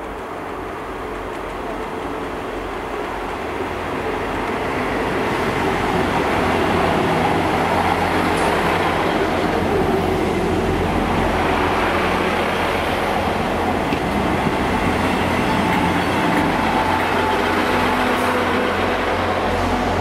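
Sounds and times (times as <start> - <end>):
train moving slowly: 0.0 - 20.0.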